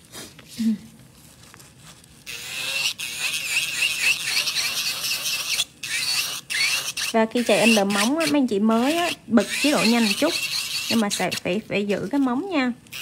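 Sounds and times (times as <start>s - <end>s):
electric nail drill grinding whine: 2.3s - 11.5s.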